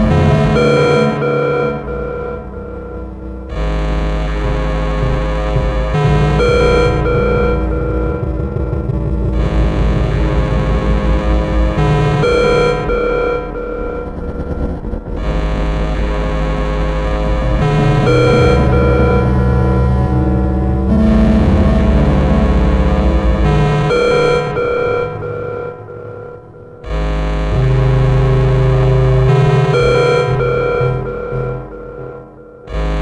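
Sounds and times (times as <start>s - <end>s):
layered oscillator tones: 0.0s - 33.0s
low drone: 0.0s - 33.0s.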